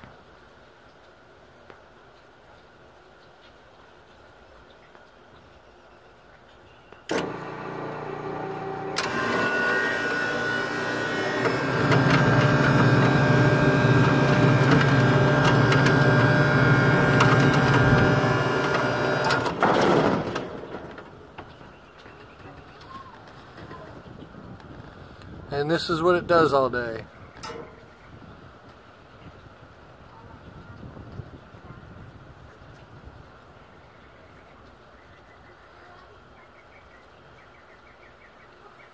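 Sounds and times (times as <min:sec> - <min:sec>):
machine click: 0:07.1 - 0:21.1, 0:27.4 - 0:28.0
motor hum: 0:07.1 - 0:24.3, 0:27.3 - 0:28.1.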